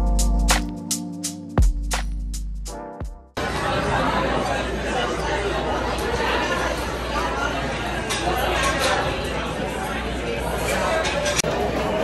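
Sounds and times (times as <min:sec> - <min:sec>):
crowd chattering: 0:03.4 - 0:12.0.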